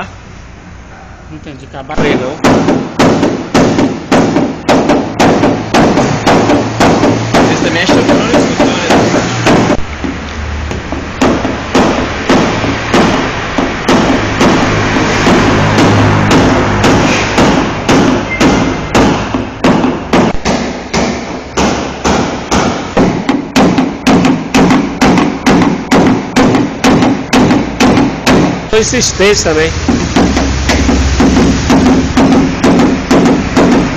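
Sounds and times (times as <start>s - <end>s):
hammer tapping on sheet metal: 2.0s - 33.9s.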